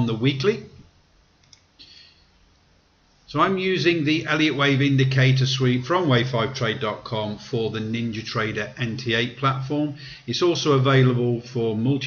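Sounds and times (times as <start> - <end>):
computer mouse click: 1.4 - 1.8.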